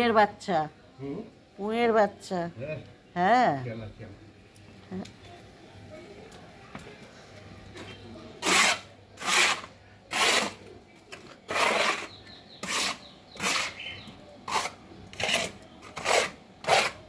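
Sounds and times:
broom sweeping leaves on concrete: 0:08.4 - 0:10.6.

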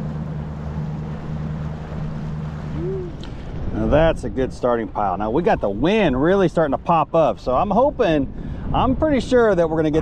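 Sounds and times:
boat motor humming: 0:00.0 - 0:10.0
water noise: 0:00.0 - 0:10.0
wind: 0:00.0 - 0:10.0.

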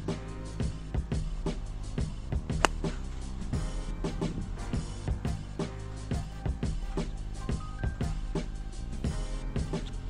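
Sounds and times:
background music with beat: 0:00.0 - 0:10.0
golf club striking ball: 0:02.6 - 0:03.3.

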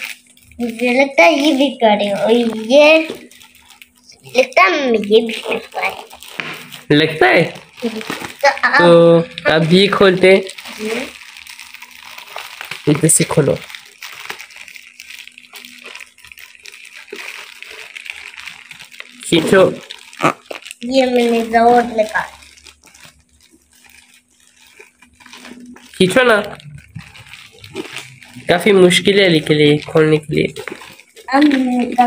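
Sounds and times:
plastic bag crinkling: 0:00.0 - 0:32.0
person's voice: 0:00.6 - 0:03.2, 0:04.1 - 0:06.2, 0:19.2 - 0:22.4, 0:25.4 - 0:27.2, 0:28.0 - 0:32.0.

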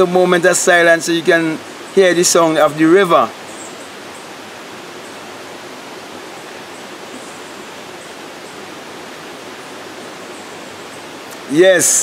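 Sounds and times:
river flowing: 0:00.0 - 0:12.0.

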